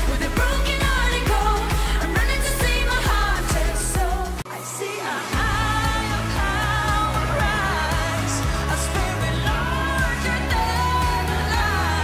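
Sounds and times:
pop song with singing: 0:00.0 - 0:12.0
pop song with woman singing: 0:00.0 - 0:12.0.

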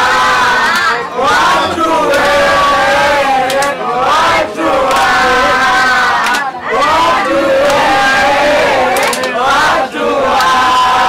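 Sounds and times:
hand claps: 0:00.6 - 0:01.0, 0:02.0 - 0:02.4, 0:03.4 - 0:03.8, 0:04.8 - 0:05.3, 0:06.2 - 0:07.0, 0:07.6 - 0:08.1, 0:08.8 - 0:10.8.

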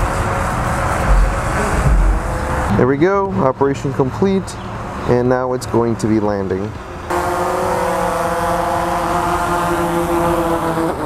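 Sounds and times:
drone propellers humming: 0:00.0 - 0:05.0, 0:06.8 - 0:11.0.

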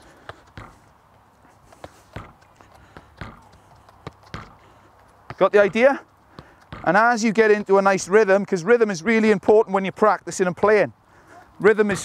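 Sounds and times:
football knocking against wall: 0:03.2 - 0:03.5.

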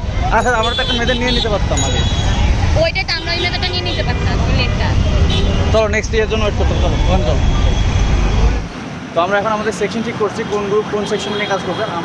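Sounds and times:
street traffic rumble: 0:00.0 - 0:12.0
voices talking: 0:00.1 - 0:12.0
man's voice: 0:00.2 - 0:02.1.

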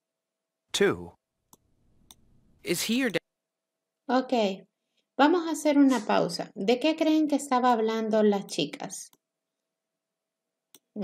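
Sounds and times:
person speaking: 0:00.7 - 0:01.2, 0:02.6 - 0:03.2, 0:05.7 - 0:06.5.

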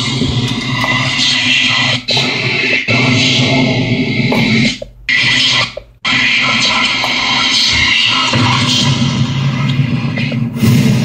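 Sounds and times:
loud music through speakers: 0:00.0 - 0:11.0.

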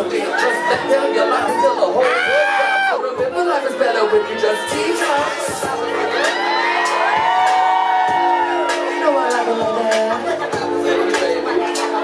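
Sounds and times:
pop song with lead vocal: 0:00.0 - 0:12.0.

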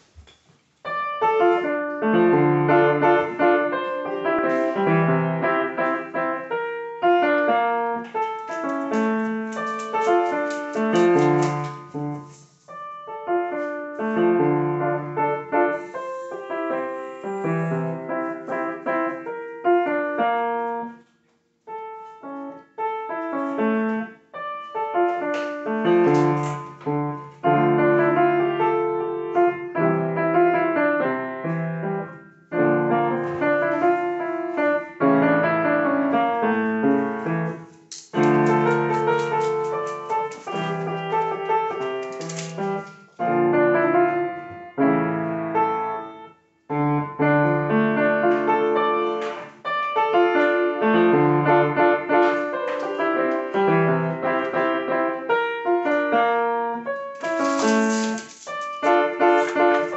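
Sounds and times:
upright piano playing: 0:00.8 - 0:21.0, 0:21.7 - 0:59.9.

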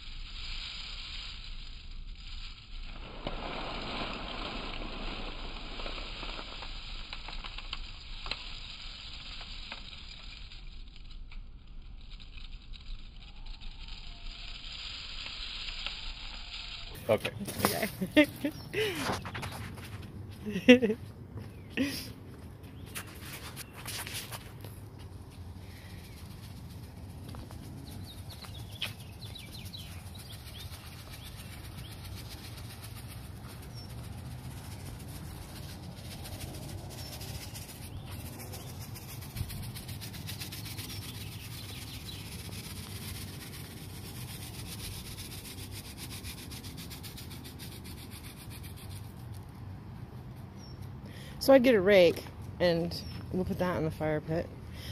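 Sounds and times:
low outdoor background noise: 0:00.0 - 0:54.9.

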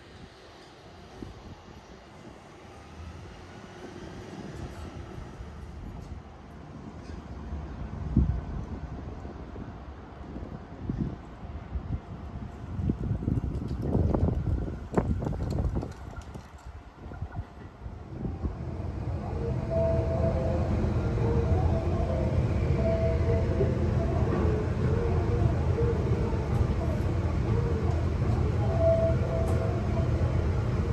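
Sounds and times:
train rumbling past: 0:00.0 - 0:30.9
wind buffeting microphone: 0:07.9 - 0:21.4.

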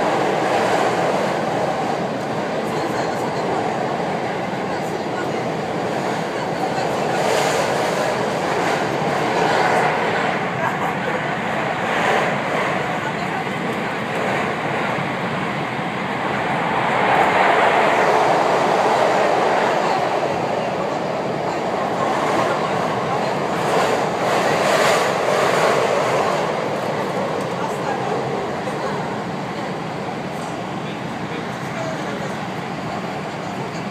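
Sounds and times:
train wheels on rail: 0:00.0 - 0:33.9.

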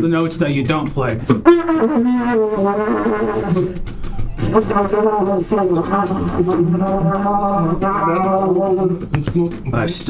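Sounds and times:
trumpet playing held notes: 0:01.3 - 0:09.1.

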